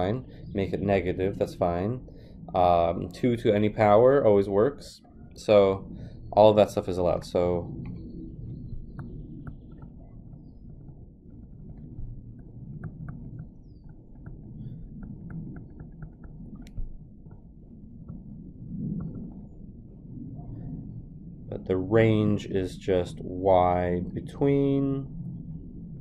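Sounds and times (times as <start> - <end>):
low rumbling microphone noise: 0.0 - 26.0
stylus tapping on tablet screen: 8.9 - 17.4.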